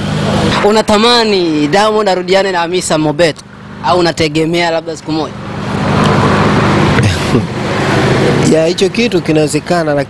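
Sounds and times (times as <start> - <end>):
vehicle passing close by: 5.2 - 9.4.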